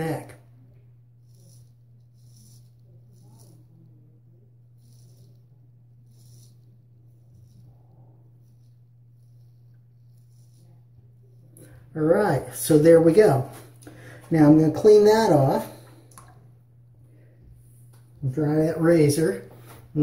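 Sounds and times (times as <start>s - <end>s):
steady low hum: 0.0s - 20.0s
razor scraping stubble: 1.1s - 13.8s.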